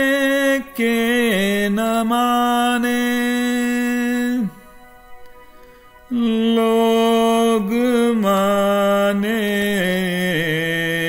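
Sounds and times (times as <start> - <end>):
man singing unaccompanied: 0.0 - 4.6, 6.1 - 11.0.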